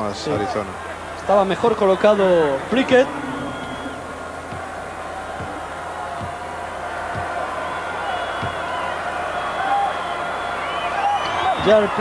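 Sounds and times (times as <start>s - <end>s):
arena crowd noise: 0.0s - 12.0s
basketball bouncing on hardwood: 8.4s - 8.7s.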